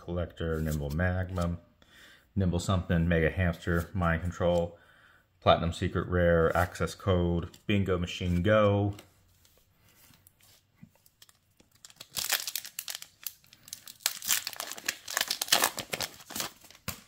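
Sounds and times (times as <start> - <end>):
wrapper tearing and crinkling: 11.2 - 17.0.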